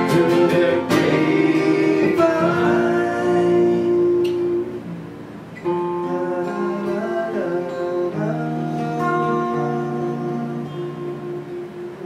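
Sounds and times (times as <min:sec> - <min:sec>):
acoustic guitars strumming chords: 0:00.0 - 0:12.0.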